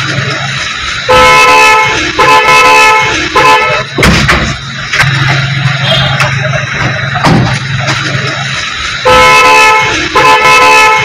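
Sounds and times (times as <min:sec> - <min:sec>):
vehicle horn honking: 0:01.1 - 0:04.0, 0:05.7 - 0:06.3, 0:09.0 - 0:11.0.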